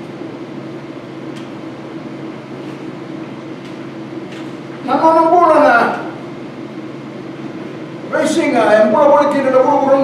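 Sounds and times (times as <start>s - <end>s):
background hum with hiss: 0.0s - 10.0s.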